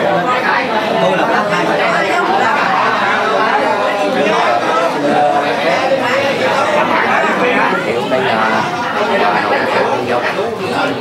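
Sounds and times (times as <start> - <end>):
overlapping conversation: 0.0 - 11.0.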